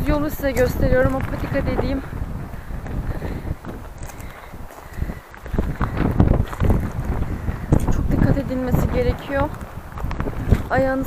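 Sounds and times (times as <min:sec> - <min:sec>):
footsteps on gravel: 0:00.0 - 0:11.0
wind rumbling on microphone: 0:00.0 - 0:11.0.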